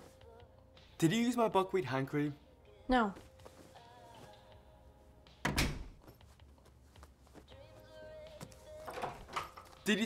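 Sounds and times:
interior door thudding shut: 5.4s - 6.0s.

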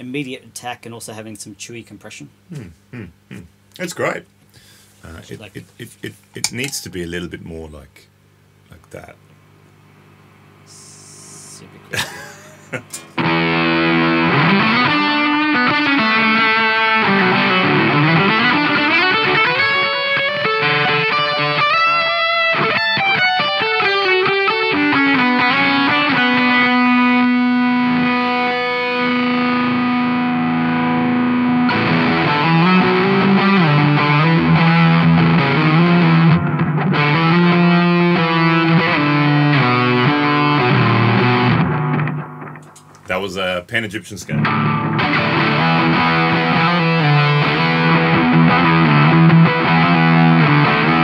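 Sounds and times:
fuzzy electric guitar: 10.0s - 43.1s, 44.3s - 51.0s.

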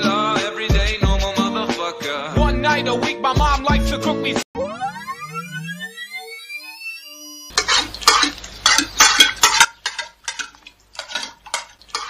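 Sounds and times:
electronic tone sliding upward: 4.6s - 7.5s
spoon clattering against bowl: 7.5s - 12.0s.

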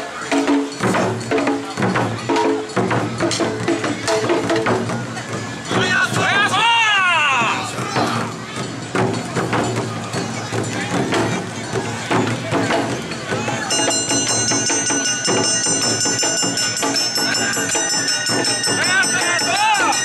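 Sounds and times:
drums beating: 0.0s - 20.0s
high held tone: 13.7s - 20.0s.

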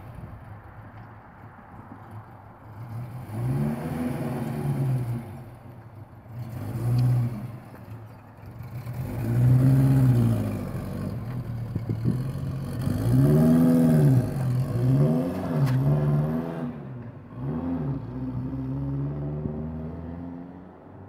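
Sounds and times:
car engine revving: 6.3s - 20.9s.

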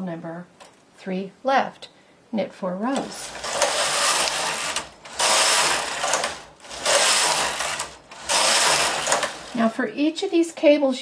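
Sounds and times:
knitting machine carriage rattling: 3.0s - 9.7s.

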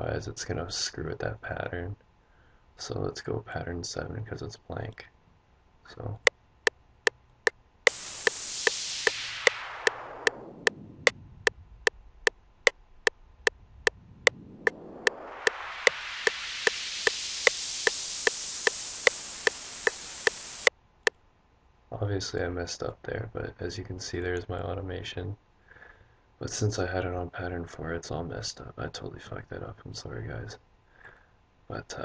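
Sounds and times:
filtered hiss sweeping: 7.9s - 11.4s, 14.0s - 20.7s.

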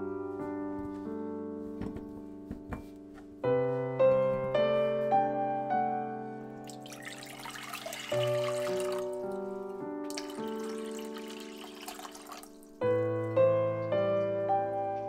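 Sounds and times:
soft piano music: 0.0s - 15.0s
water pouring into pot: 6.7s - 9.3s, 10.1s - 13.3s.

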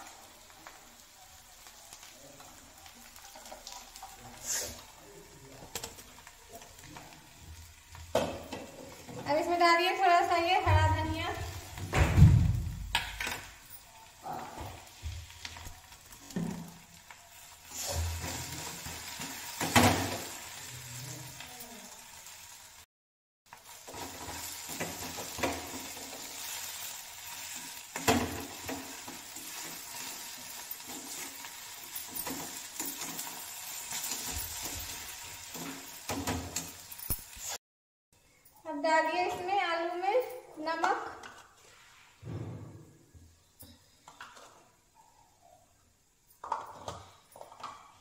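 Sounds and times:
potatoes sizzling in a pan: 0.0s - 22.9s, 23.5s - 37.6s.

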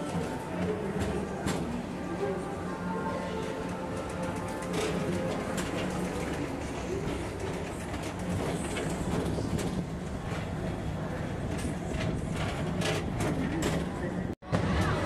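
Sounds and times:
faint background music: 0.0s - 9.7s.

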